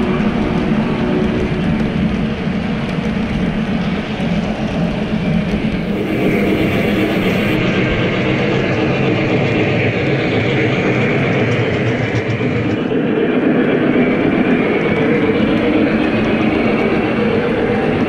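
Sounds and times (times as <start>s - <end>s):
model train wheels rolling on rail: 0.3s - 7.6s
motor hum: 5.7s - 7.6s.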